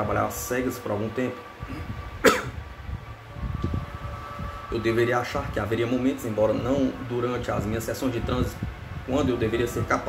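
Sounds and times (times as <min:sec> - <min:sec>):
soft low bumps: 0:01.6 - 0:10.0
man coughing: 0:01.7 - 0:02.6.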